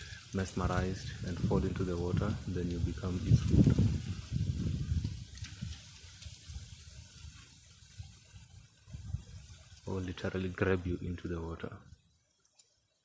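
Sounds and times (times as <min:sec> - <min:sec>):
faint clicks: 0:12.3 - 0:13.0.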